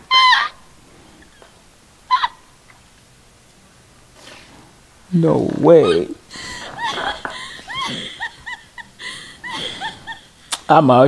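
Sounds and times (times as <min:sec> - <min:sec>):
high-pitched yelp: 0:00.0 - 0:00.6.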